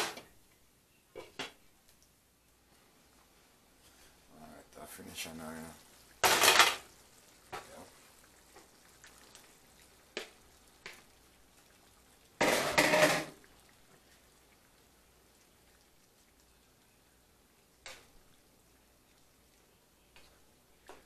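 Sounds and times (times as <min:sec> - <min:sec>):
shrimp clattering and splashing into sauce: 0:04.8 - 0:21.0.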